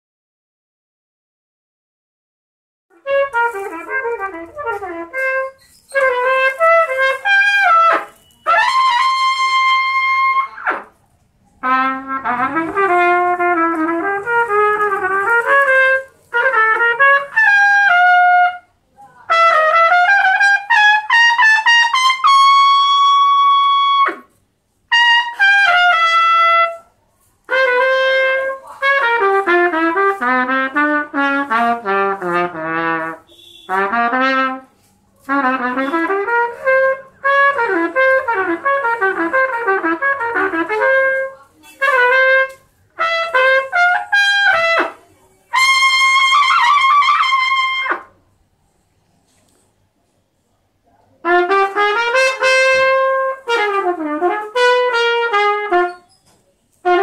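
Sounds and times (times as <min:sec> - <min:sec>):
solo trumpet melody: 0:02.9 - 0:48.2, 0:51.2 - 0:56.2, 0:56.8 - 0:57.0.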